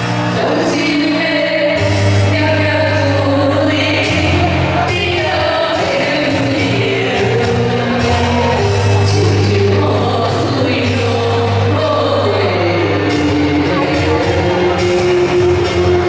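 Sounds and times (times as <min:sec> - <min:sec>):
instrumental accompaniment with bass: 0:00.0 - 0:16.0
woman singing pop song: 0:00.0 - 0:16.0.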